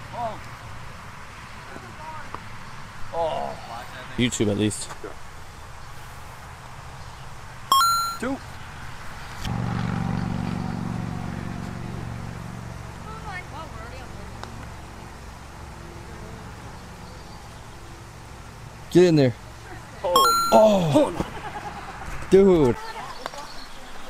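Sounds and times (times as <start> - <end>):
low engine hum: 9.5 - 18.7.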